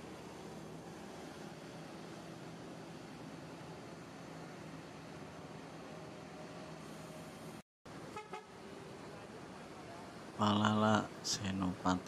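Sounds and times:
traffic: 0:00.0 - 0:12.0
vehicle horn toots: 0:08.1 - 0:08.5.

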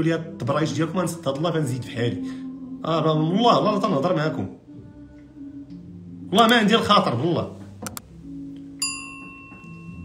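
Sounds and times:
bell-like ding: 0:08.8 - 0:10.0.

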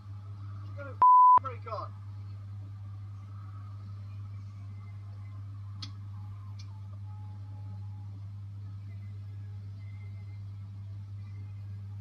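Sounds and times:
steady low hum: 0:00.0 - 0:12.0
censor bleep: 0:01.0 - 0:01.4
faint clicks: 0:05.8 - 0:07.0.

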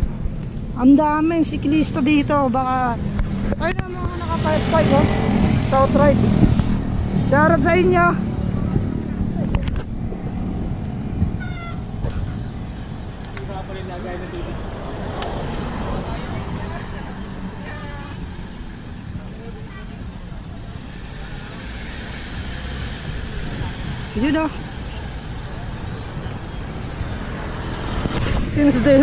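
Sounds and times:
passing road traffic: 0:00.0 - 0:29.0
wind rumbling on microphone: 0:00.0 - 0:29.0
faint voices of cyclists: 0:07.3 - 0:10.0, 0:11.4 - 0:27.4.

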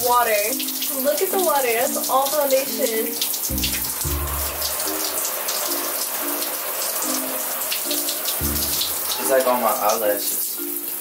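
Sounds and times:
shower water splashing: 0:00.0 - 0:11.0
slow music with bass hits: 0:03.5 - 0:06.5, 0:07.1 - 0:09.4.

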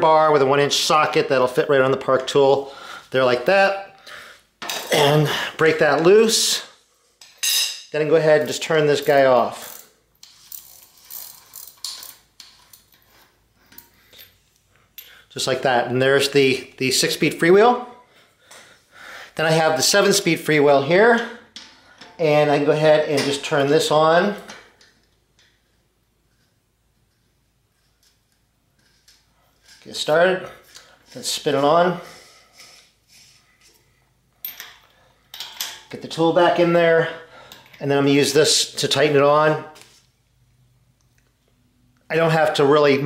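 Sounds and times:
bicycle freewheel clicks and scrapes: 0:09.6 - 0:13.1.

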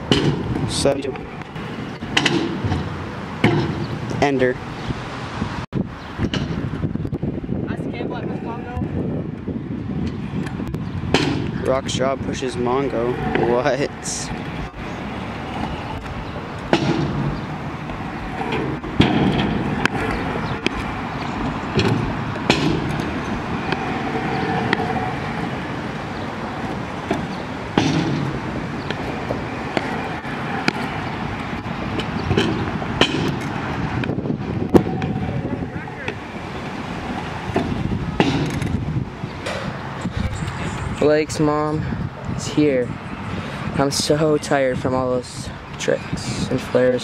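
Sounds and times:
scooter landing clacks: 0:01.5 - 0:04.2, 0:15.6 - 0:25.0, 0:26.6 - 0:30.0, 0:31.9 - 0:34.2
scooter wheels rolling on concrete: 0:07.3 - 0:41.5.

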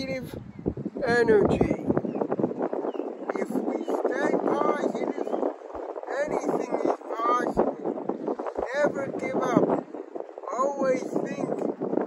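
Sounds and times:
wind noise on microphone: 0:00.0 - 0:12.0
person talking: 0:03.3 - 0:05.3, 0:06.1 - 0:07.8, 0:08.6 - 0:09.7, 0:10.4 - 0:11.6.

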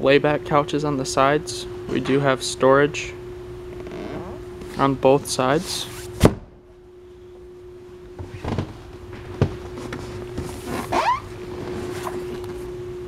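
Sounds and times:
short squeak: 0:10.9 - 0:11.3.

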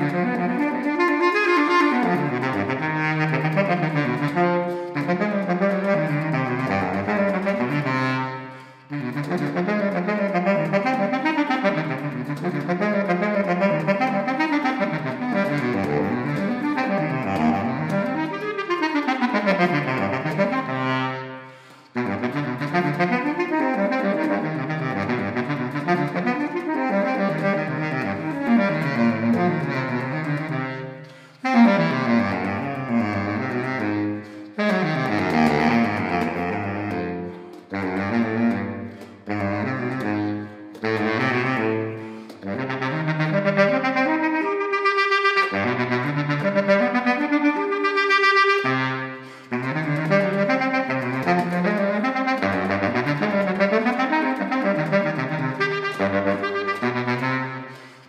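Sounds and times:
baritone saxophone fast runs: 0:00.0 - 0:58.0.

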